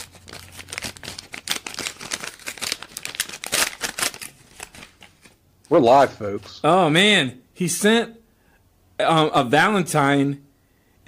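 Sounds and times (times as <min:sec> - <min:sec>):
paper envelope tearing: 0:00.0 - 0:05.4.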